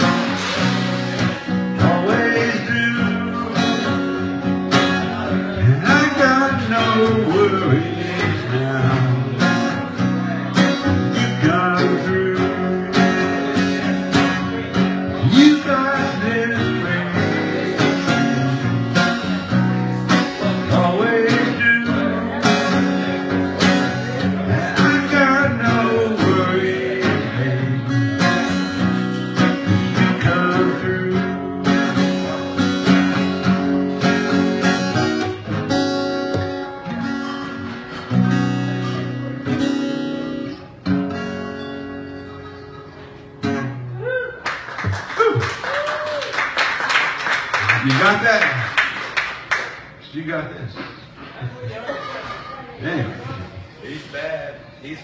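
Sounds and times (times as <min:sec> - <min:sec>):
acoustic guitar strumming: 0:00.0 - 0:45.0.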